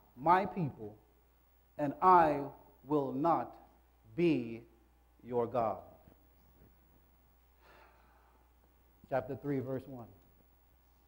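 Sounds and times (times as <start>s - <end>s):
low steady hum: 0.0s - 11.0s
man breathing into microphone: 7.6s - 8.5s.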